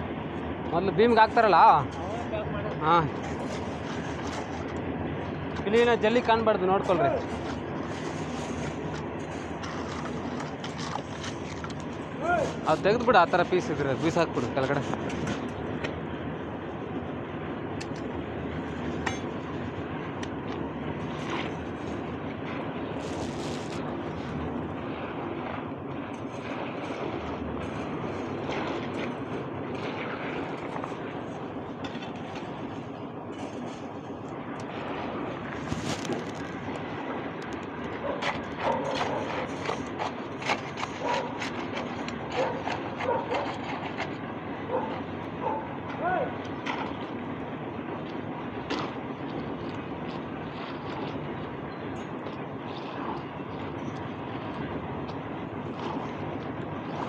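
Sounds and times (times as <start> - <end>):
machinery engine running: 0.0 - 57.0.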